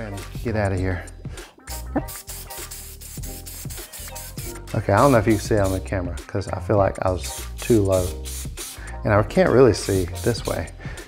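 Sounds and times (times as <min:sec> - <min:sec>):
background music: 0:00.0 - 0:11.0
spray-paint can hissing: 0:01.7 - 0:05.8, 0:07.2 - 0:08.9, 0:09.8 - 0:10.7.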